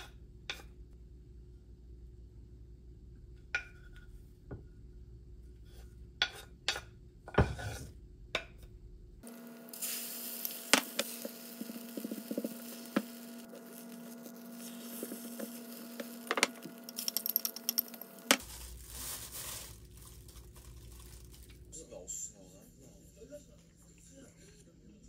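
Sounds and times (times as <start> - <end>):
spatula scraping a pan: 5.7 - 7.9
steady hum: 8.8 - 20.4
egg sizzling: 9.2 - 21.7
handling rustle: 16.9 - 21.7.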